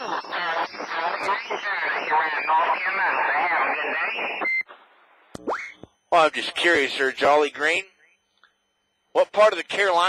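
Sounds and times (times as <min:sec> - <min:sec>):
voice over radio speaker: 0:00.0 - 0:04.4, 0:06.2 - 0:08.2, 0:09.2 - 0:10.0
faint radio hiss: 0:00.0 - 0:05.3.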